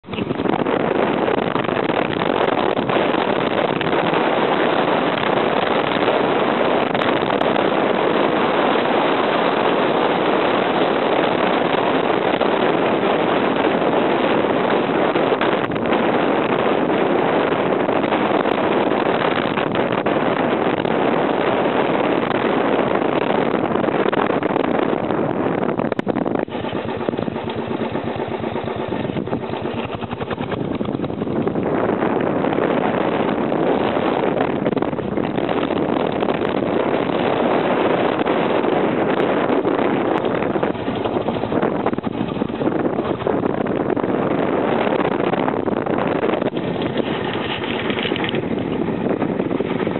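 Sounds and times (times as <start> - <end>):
motorbike engine running: 0.0 - 49.9
wind on microphone: 0.0 - 49.9.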